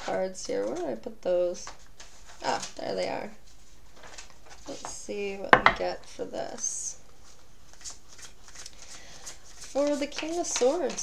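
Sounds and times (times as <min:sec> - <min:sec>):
cards being shuffled: 0:07.7 - 0:11.0.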